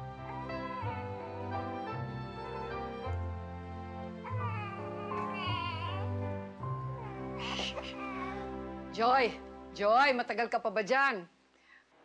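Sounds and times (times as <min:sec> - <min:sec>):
slow background music: 0:00.0 - 0:11.4
infant crying: 0:00.2 - 0:01.8, 0:04.2 - 0:08.7.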